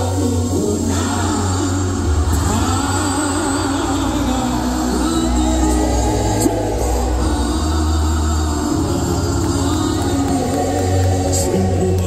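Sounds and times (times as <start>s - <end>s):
backing vocalists singing: 0.0s - 12.0s
man singing lead: 0.0s - 12.0s.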